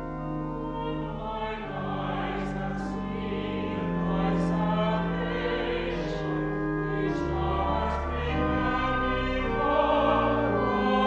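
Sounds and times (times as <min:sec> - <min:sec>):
choir singing in reverberant hall: 0:00.0 - 0:11.0.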